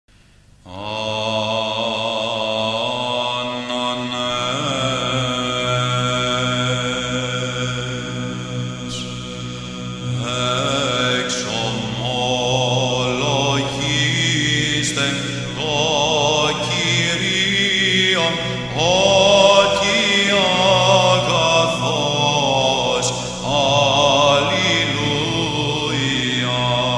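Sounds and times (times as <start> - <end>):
voices chanting a melody: 0.7 - 26.9.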